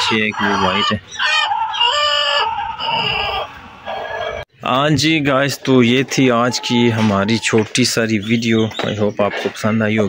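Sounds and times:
chickens calling: 0.0s - 10.0s.

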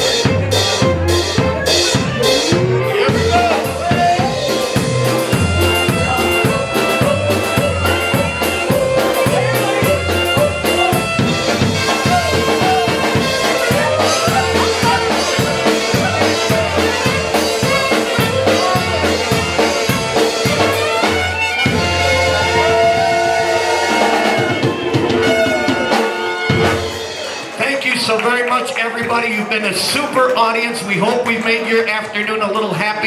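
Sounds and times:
pulsing bass beat: 0.0s - 25.8s
accordion: 0.0s - 27.6s
polka band playing: 0.0s - 33.0s.

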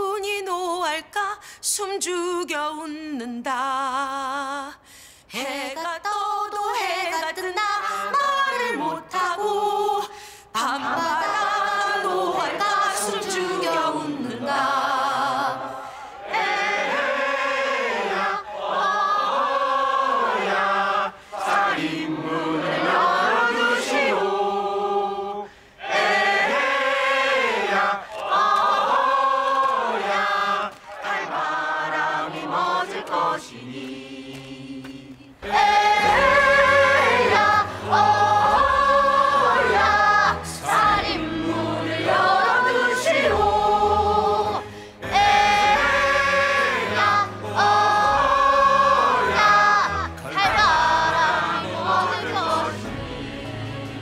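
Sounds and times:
crowd singing slow song: 6.4s - 54.0s.

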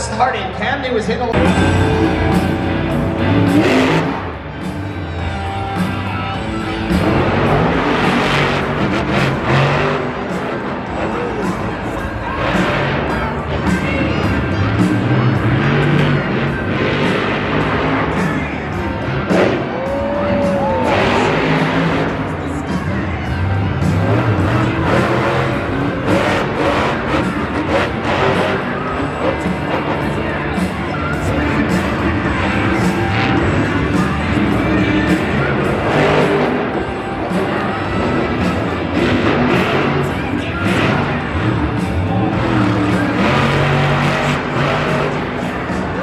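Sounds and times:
music over loudspeakers: 0.0s - 46.0s
truck engine revving: 1.3s - 46.0s.

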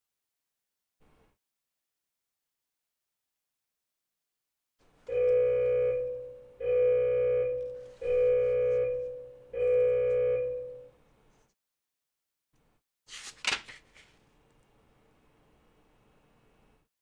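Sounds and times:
electronic timer alarm tones: 5.1s - 10.9s.

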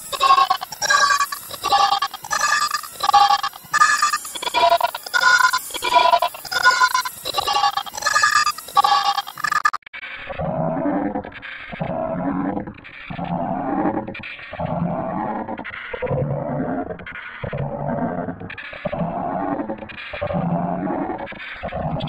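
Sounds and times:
distorted cartoon character voice: 0.0s - 22.0s.

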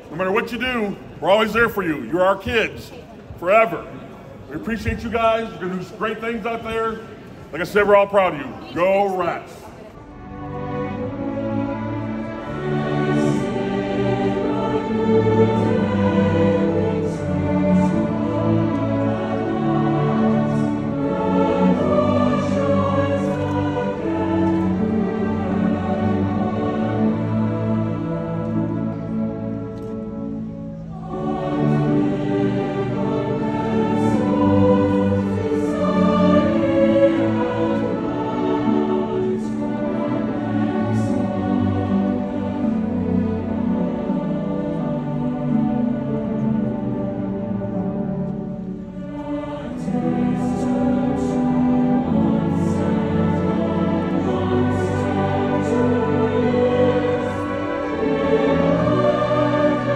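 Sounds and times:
string orchestra chords: 0.0s - 59.9s
choir singing: 3.4s - 59.9s.

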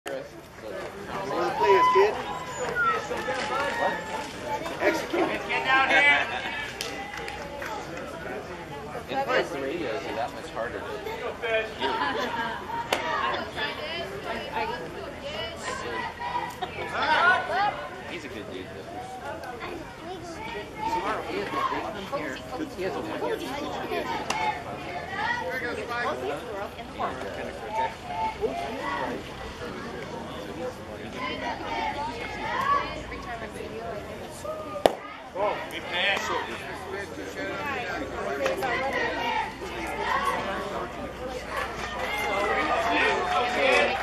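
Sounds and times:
spectators chattering: 0.0s - 44.0s
baseball bat crack: 34.8s - 35.1s.

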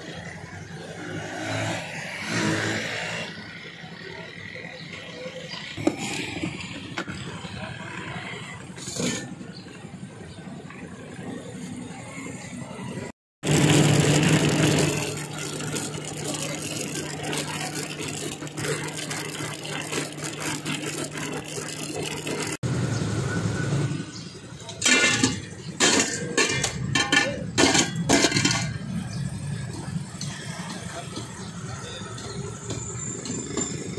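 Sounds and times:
roadside street noise: 0.0s - 33.9s
engine running steadily: 12.6s - 33.9s.

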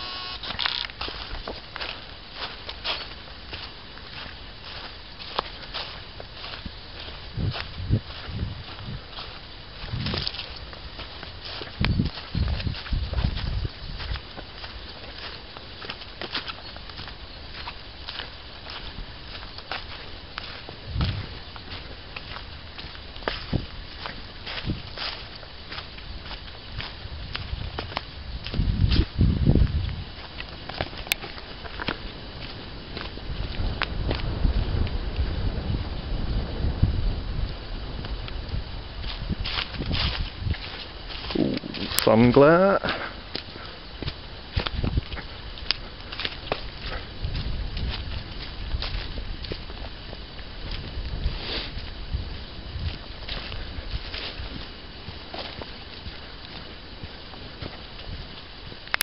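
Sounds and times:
footsteps on dry leaves: 0.0s - 36.6s, 37.4s - 58.9s
low rumbling microphone noise: 0.0s - 59.0s.

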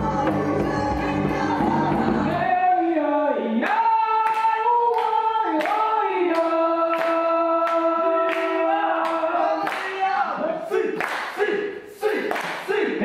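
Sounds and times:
group singing in harmony: 0.0s - 9.8s
hands clapping: 3.6s - 10.2s, 10.9s - 12.8s.

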